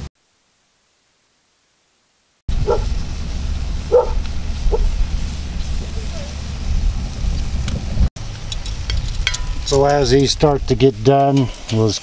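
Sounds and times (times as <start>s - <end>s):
low rumble with faint hiss: 2.5s - 11.0s.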